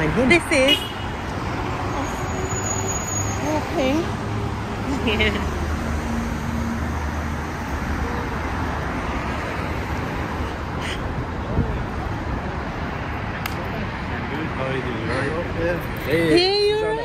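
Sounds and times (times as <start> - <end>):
road traffic: 0.0 - 17.0.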